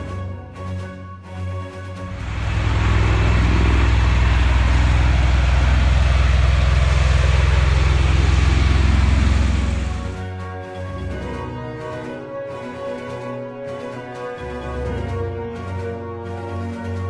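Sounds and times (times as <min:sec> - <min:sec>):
aircraft rotor and engine noise: 0:02.0 - 0:17.0.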